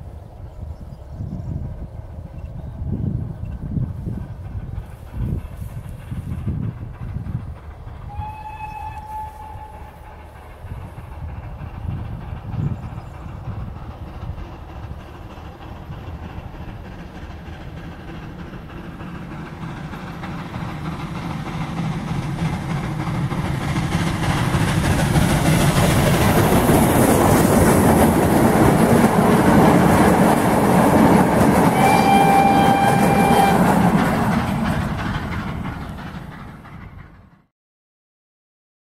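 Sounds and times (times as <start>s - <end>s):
steam locomotive rumble: 0.0s - 37.5s
train rail noise: 0.0s - 37.5s
steam whistle: 8.1s - 10.2s, 31.7s - 33.8s.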